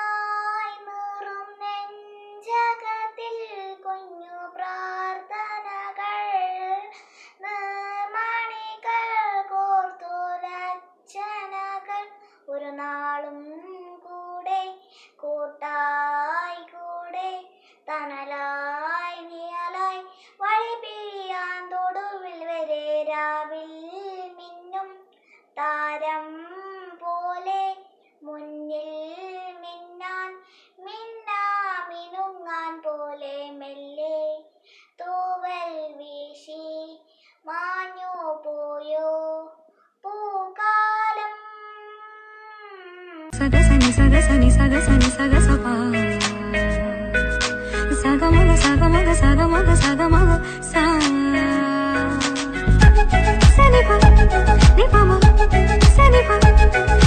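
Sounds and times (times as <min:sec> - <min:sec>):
girl singing solo: 0:40.0 - 0:57.0.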